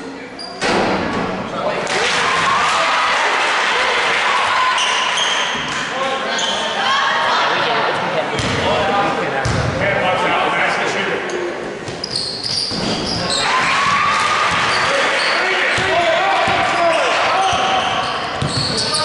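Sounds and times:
people shouting and chattering: 0.0 - 19.0
sneakers squeaking: 0.4 - 0.6, 4.7 - 6.8, 11.3 - 19.0.

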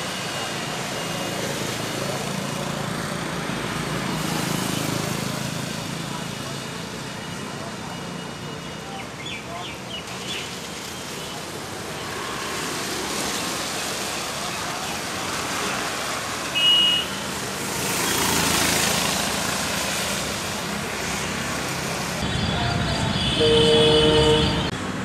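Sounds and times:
street traffic noise: 0.0 - 25.0
vehicle passing: 17.5 - 23.1
short high horn beep: 22.2 - 24.7
long horn honk: 22.2 - 24.8.

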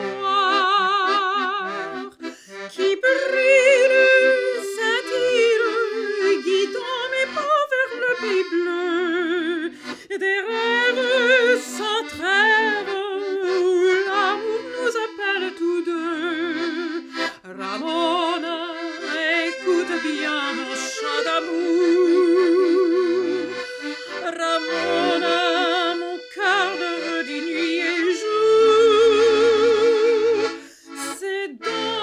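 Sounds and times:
accordion chords: 0.0 - 32.0
woman singing with vibrato: 0.0 - 32.0.

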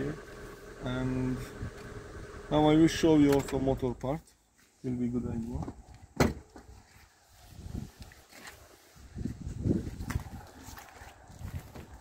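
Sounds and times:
footsteps: 4.3 - 12.0.

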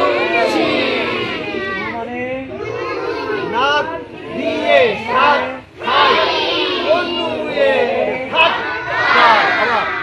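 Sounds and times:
children shouting together: 0.0 - 10.0.

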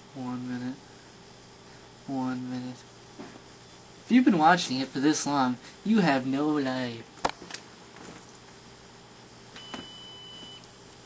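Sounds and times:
high timer alarm beep: 9.6 - 10.6.

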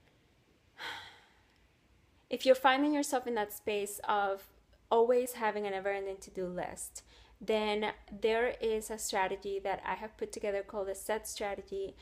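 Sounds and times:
woman breathing: 0.7 - 1.6, 7.0 - 7.4.

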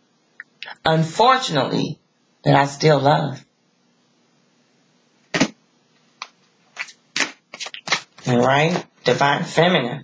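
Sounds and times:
card swish: 5.4 - 5.6.

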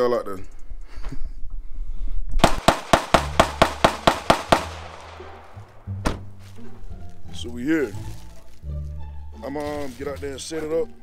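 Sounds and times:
sharp ringing cracks: 2.4 - 5.9.

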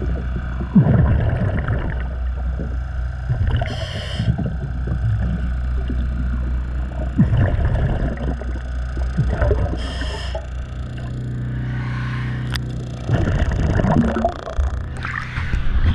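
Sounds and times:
diver's bubbles gurgling underwater: 0.0 - 11.2, 13.0 - 15.9
steady low hum: 0.0 - 15.9.

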